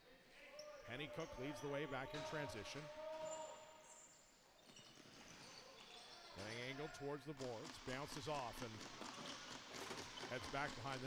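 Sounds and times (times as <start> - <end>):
play-by-play commentary: 0.6 - 3.6, 6.3 - 8.9, 10.2 - 11.0.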